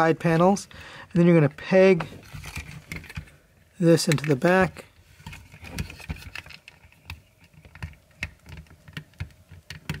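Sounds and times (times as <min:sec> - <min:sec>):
plastic toy parts clicking: 0:05.2 - 0:10.0.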